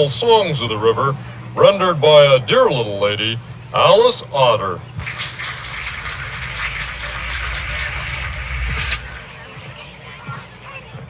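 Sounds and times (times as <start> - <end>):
audience applauding: 5.0 - 9.6
low rumble: 5.0 - 10.3.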